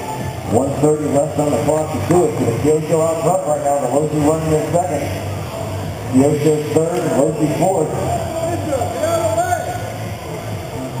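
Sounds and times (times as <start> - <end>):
background music: 0.0 - 11.0
man commentating: 0.5 - 5.1.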